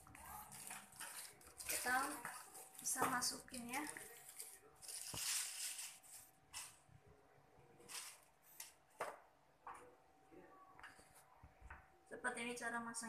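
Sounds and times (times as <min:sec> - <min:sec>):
plastic packaging crinkling: 0:00.0 - 0:06.8, 0:07.9 - 0:08.8.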